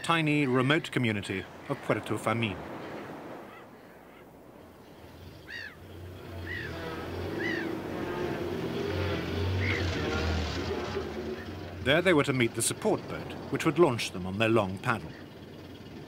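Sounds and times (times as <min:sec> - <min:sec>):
bird calls: 0:00.0 - 0:16.0
truck engine: 0:04.5 - 0:16.0.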